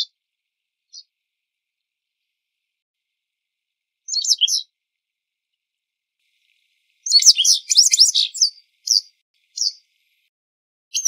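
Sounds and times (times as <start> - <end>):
wagtail calling: 4.0 - 4.7, 6.2 - 10.3.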